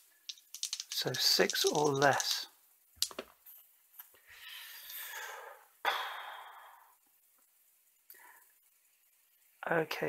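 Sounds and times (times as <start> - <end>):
dice clattering in a tray: 0.0 - 3.3.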